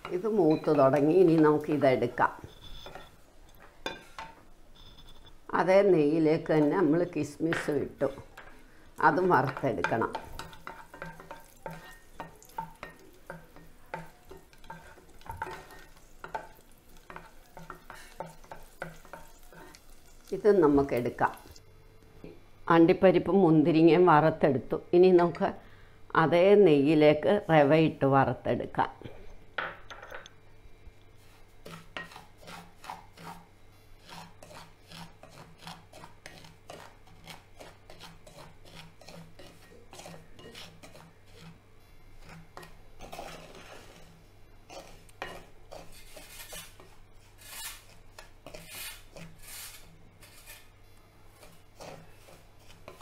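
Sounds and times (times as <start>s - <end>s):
wooden spatula scraping a pan: 0.0s - 3.2s, 6.6s - 20.4s, 31.2s - 41.6s, 42.2s - 50.7s, 51.3s - 53.0s
light sizzle: 0.0s - 22.4s, 29.9s - 53.0s.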